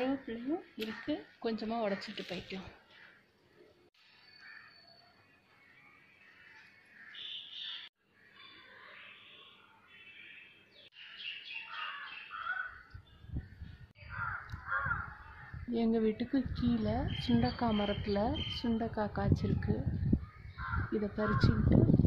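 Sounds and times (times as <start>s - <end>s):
birds chirping: 0.0s - 21.8s
crows cawing: 4.3s - 4.9s, 6.2s - 8.6s, 11.0s - 12.9s, 14.0s - 15.7s, 20.5s - 21.4s.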